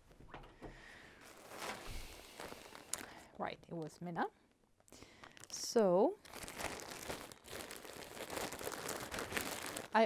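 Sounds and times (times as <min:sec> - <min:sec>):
plastic bag crinkling: 0:01.1 - 0:03.2, 0:05.0 - 0:10.0.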